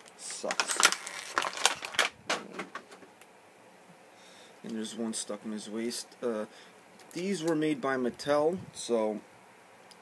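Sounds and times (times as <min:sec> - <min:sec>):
plastic packaging crackling: 0:00.0 - 0:03.0.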